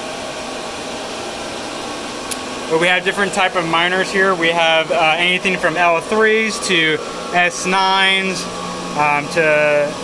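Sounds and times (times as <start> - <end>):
cooling fans rushing: 0.0 - 10.0.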